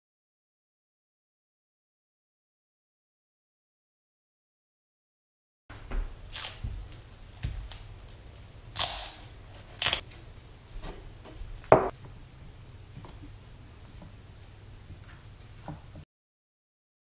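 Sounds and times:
duct tape tearing: 0:06.3 - 0:06.7, 0:07.5 - 0:10.1.

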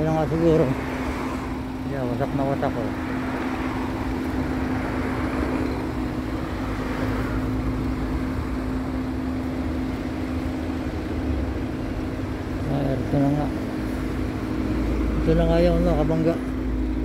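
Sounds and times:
city street traffic hum: 0:00.0 - 0:17.0.

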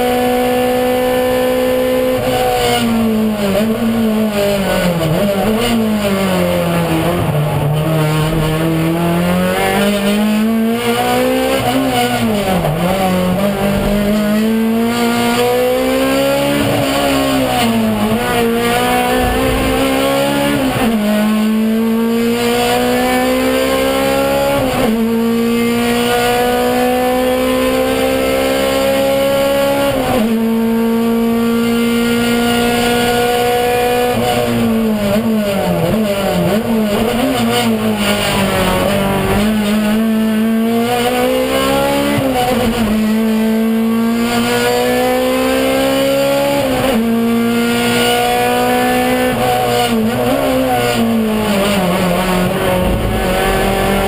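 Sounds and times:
race car engine accelerating: 0:00.0 - 0:54.0.

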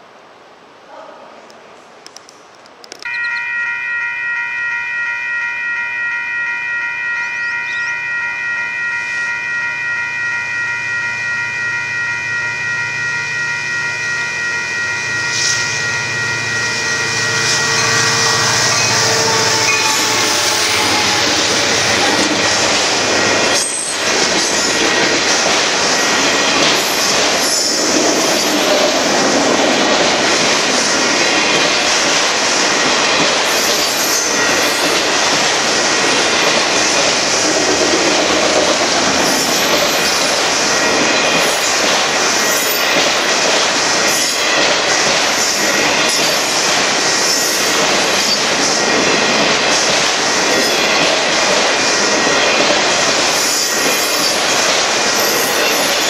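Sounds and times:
freight train cars rolling past: 0:01.8 - 0:56.0
railroad crossing bell ringing: 0:03.1 - 0:56.0
diesel locomotives rumbling: 0:03.2 - 0:56.0.

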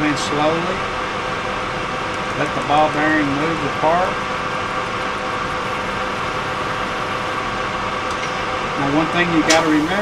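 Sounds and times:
metal lathe running: 0:00.0 - 0:10.0.

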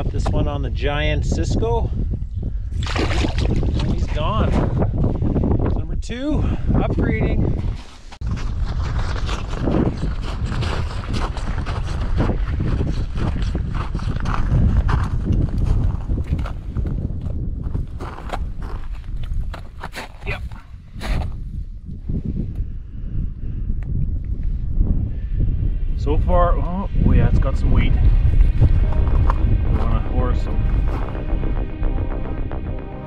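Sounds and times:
wind buffeting microphone: 0:00.0 - 0:33.0
footsteps crunching on snowy ice: 0:07.6 - 0:16.8, 0:17.7 - 0:21.4.

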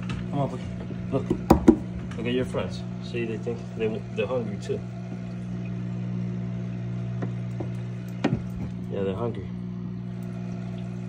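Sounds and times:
filter hum: 0:00.0 - 0:11.0
water splashing into tank: 0:10.1 - 0:11.0.

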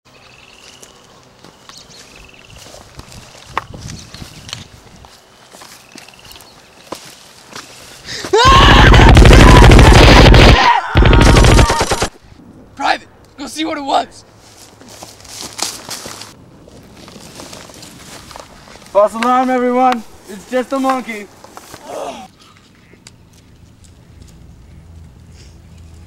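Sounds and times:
rapid machine-gun fire: 0:08.8 - 0:12.1.

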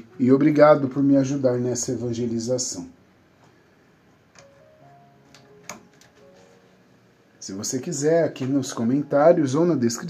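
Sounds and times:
faint soft background music: 0:00.0 - 0:10.0.

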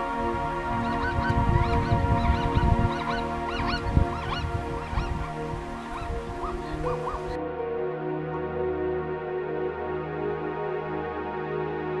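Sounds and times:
background music: 0:00.0 - 0:12.0
zebras yelping barks: 0:00.9 - 0:07.4.

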